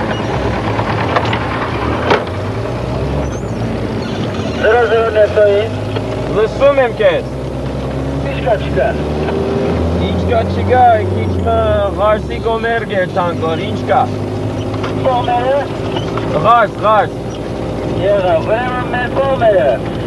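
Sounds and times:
vehicle engine droning: 0.0 - 20.0.

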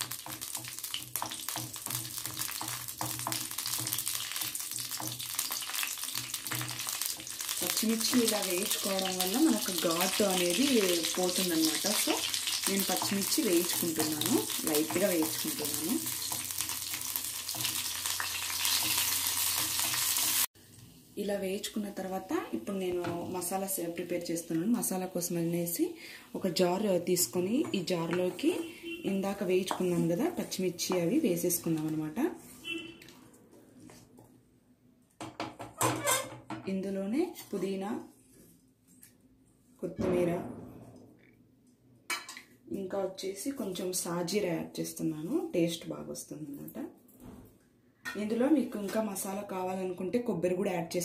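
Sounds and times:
chillies sizzling in hot oil: 0.0 - 32.2.

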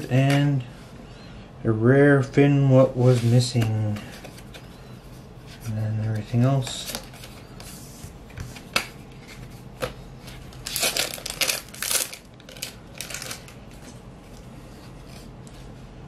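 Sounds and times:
cards rustling and sliding: 3.0 - 15.9.

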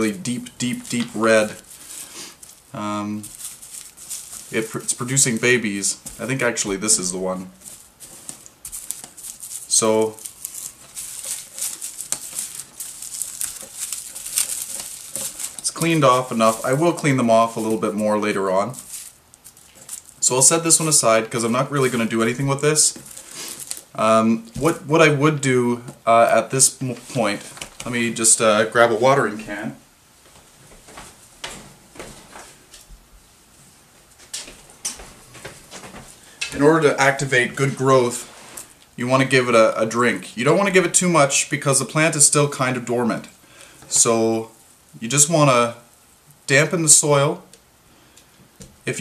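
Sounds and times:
papery crinkling rustles: 0.0 - 28.9.

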